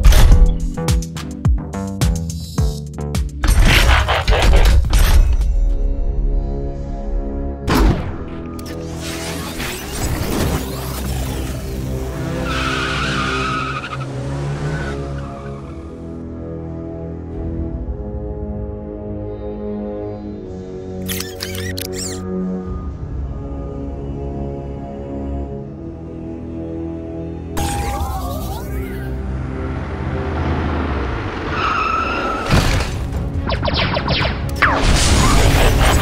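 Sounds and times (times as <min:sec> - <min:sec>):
background music: 0:00.0 - 0:36.0
truck engine and road rush: 0:08.1 - 0:18.9, 0:27.6 - 0:36.0
car tyres squealing: 0:12.2 - 0:15.9, 0:31.3 - 0:32.9.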